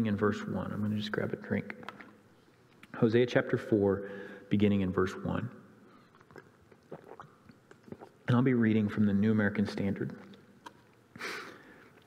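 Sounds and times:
man swallowing while drinking: 6.2s - 8.3s.

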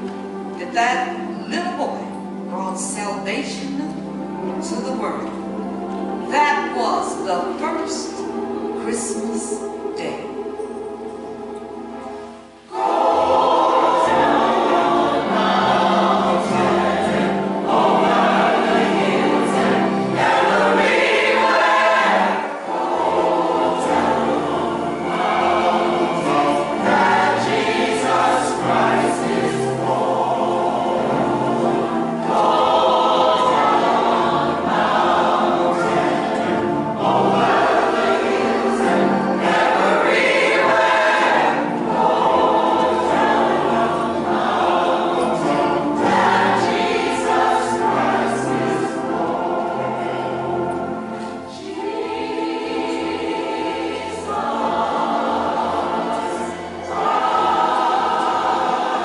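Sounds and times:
choir singing gospel song: 0.0s - 59.0s.

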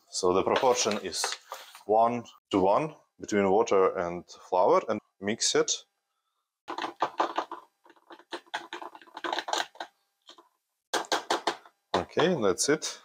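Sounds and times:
fork stirring dough in plastic container: 6.7s - 10.4s.

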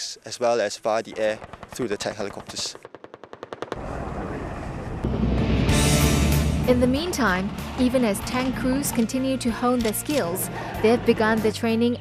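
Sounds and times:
machine gun firing rapid burst: 1.4s - 3.8s
tank engine rumbling: 3.8s - 11.7s.

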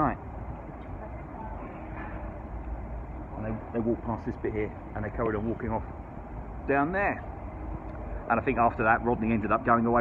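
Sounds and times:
distant city traffic rumble: 0.0s - 10.0s.

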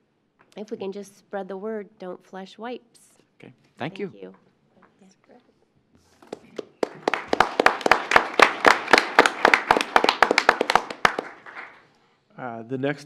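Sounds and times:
small audience applauding: 6.2s - 11.9s.

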